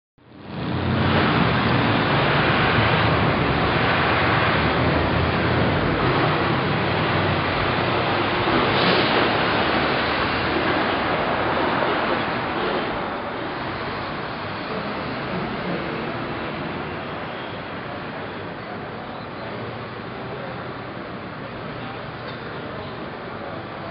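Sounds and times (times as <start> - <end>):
low vehicle rumble: 0.2 - 23.9.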